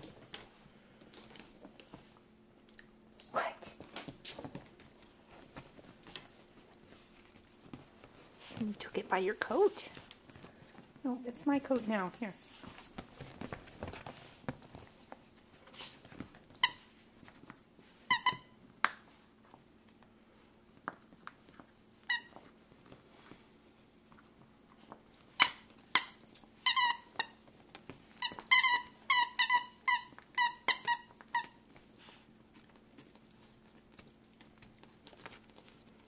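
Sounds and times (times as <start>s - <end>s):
dog toy squeaking: 25.4s - 27.4s, 28.2s - 31.6s.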